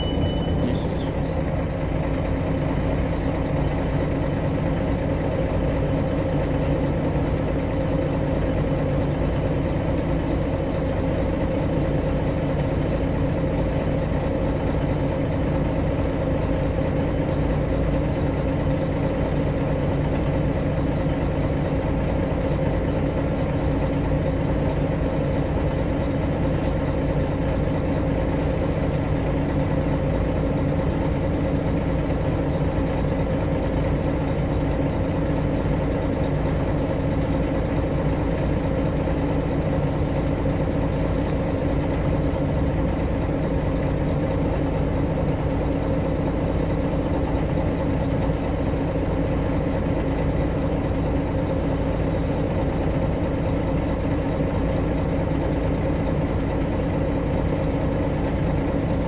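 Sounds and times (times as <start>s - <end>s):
bus diesel engine idling: 0.0s - 59.0s.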